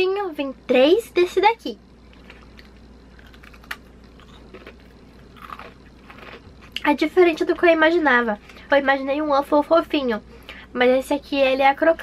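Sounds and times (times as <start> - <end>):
crunching crisp cookie: 2.0 - 7.7.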